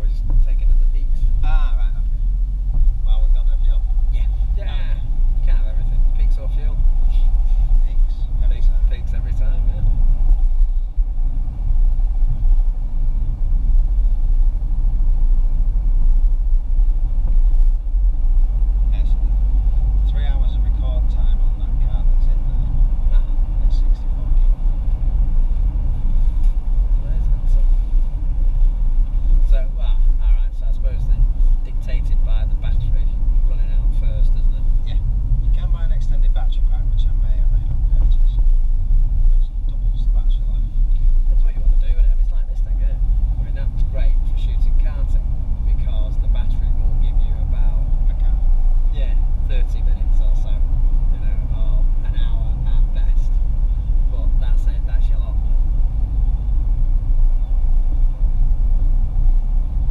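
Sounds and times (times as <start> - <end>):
car engine and tyres rumbling: 0.0 - 59.9.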